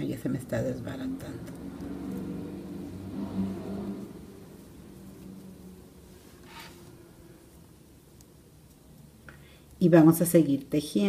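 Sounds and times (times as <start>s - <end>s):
low engine hum: 0.5s - 7.8s.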